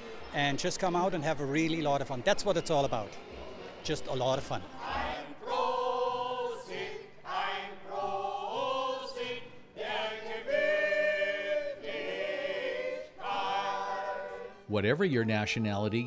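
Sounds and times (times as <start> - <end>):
mixed choir singing: 3.1 - 14.7.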